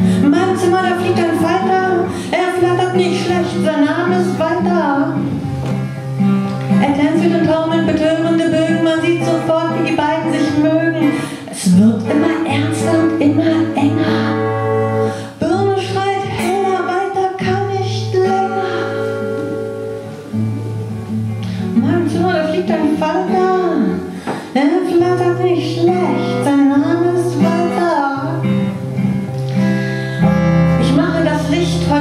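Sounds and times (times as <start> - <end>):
person singing: 0.0 - 5.3, 6.7 - 19.9, 21.5 - 28.7, 29.6 - 32.0
acoustic guitar: 0.0 - 32.0.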